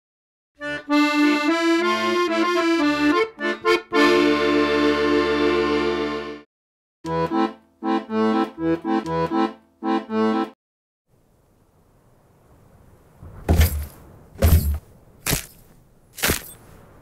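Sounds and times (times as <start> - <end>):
accordion music: 0.6 - 10.6.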